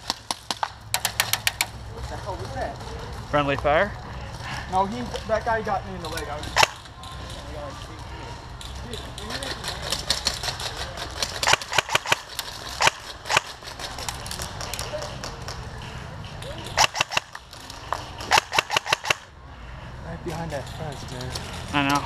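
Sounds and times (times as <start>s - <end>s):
airsoft guns firing pops: 0.0s - 1.8s, 6.5s - 6.9s, 11.3s - 14.8s, 16.7s - 19.3s.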